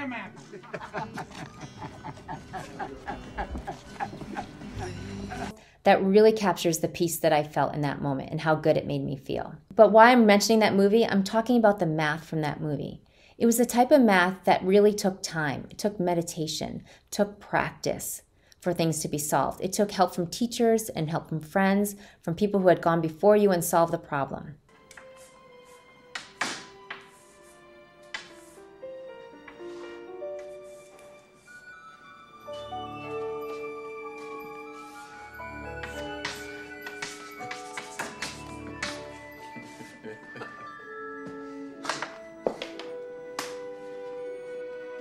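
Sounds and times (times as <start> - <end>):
background music: 0.0 - 8.9, 24.6 - 45.0
chalk tapping and scraping: 24.9 - 28.7, 29.5 - 31.6, 33.5 - 40.0.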